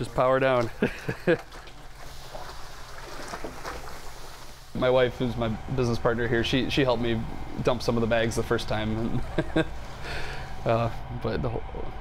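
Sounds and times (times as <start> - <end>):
wooden paddle stirring mash: 0.0 - 5.6
grain pouring into wet mash: 0.0 - 7.9.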